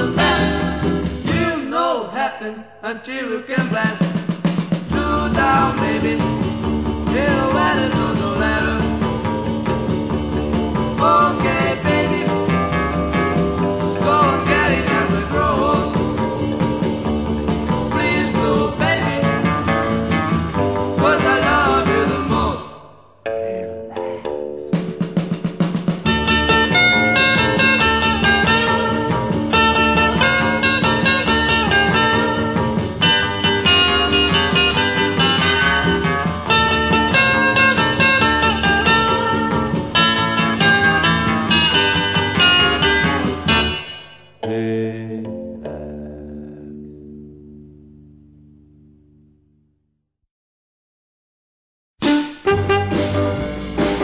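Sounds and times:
rock and roll band playing: 0.0s - 1.6s, 3.6s - 22.7s, 24.6s - 44.2s, 52.0s - 54.0s.

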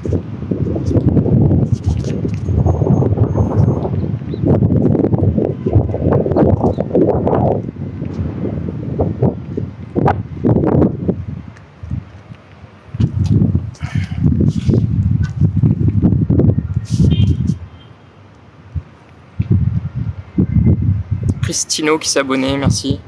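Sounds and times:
strong wind on microphone: 0.0s - 17.9s, 18.6s - 23.0s.

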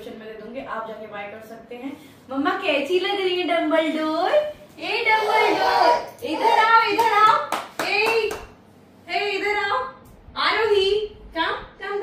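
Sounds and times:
hand claps: 6.9s - 8.6s.

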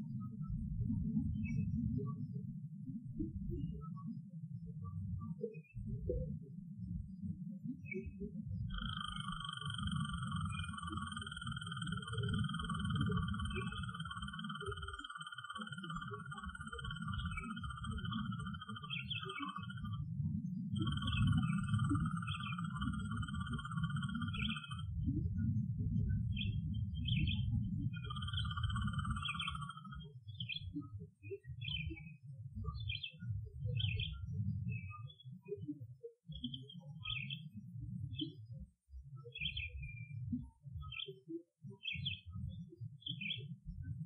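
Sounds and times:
trilled animal call: 8.8s - 19.9s, 20.8s - 24.9s.

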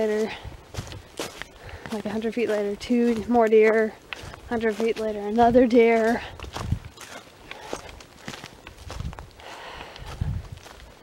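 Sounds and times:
footsteps on a trail: 0.0s - 11.0s.

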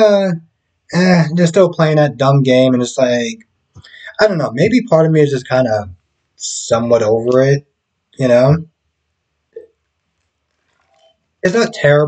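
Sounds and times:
mouth and bottle sounds: 1.0s - 5.8s, 8.2s - 8.6s, 10.7s - 12.0s.

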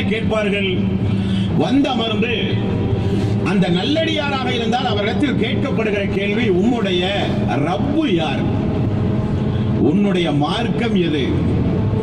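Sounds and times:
man speaking: 0.0s - 2.7s, 3.4s - 8.6s, 9.8s - 11.4s
vehicle rumble: 0.0s - 12.0s.

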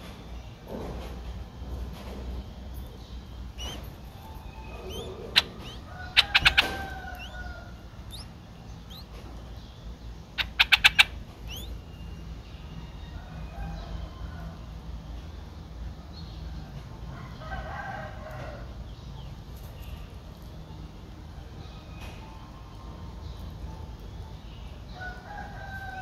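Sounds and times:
faint bird chirps: 1.6s - 14.4s.

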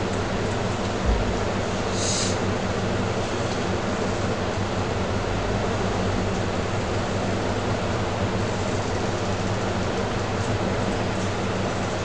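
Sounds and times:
low even hum: 0.0s - 2.7s
steady hiss: 1.9s - 2.4s.

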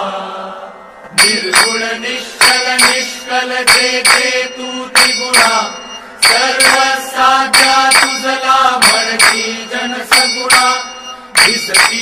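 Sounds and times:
devotional melody over drone: 0.0s - 12.0s
ringing percussion strikes: 1.1s - 12.0s.

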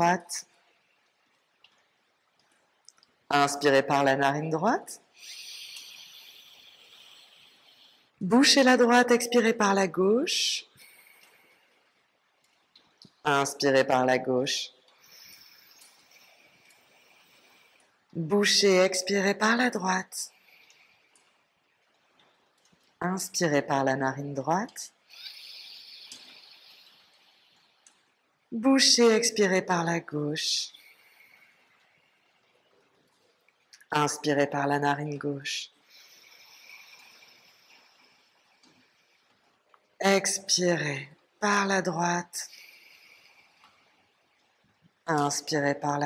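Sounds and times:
soft nasal inhalation hiss: 5.1s - 8.2s, 10.7s - 12.6s, 14.9s - 18.1s, 20.3s - 22.1s, 25.0s - 28.4s, 30.7s - 32.6s, 35.8s - 40.0s, 42.4s - 44.8s.

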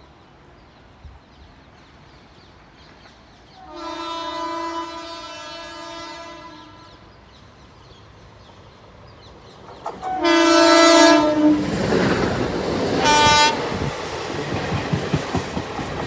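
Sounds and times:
train horn long blast: 3.6s - 7.2s, 10.0s - 11.8s, 13.0s - 13.8s.

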